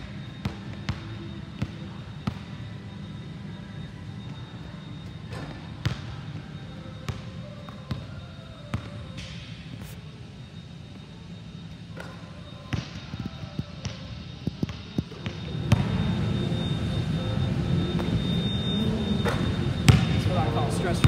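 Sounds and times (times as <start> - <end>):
basketball bouncing on gym court: 0.0 - 2.6, 4.3 - 9.4, 12.0 - 16.2, 19.2 - 20.4.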